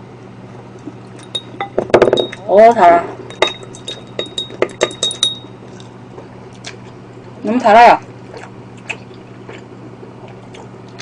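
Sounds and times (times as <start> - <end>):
low steady hum: 0.0 - 11.0
chopsticks clinking against dishes: 3.3 - 5.6.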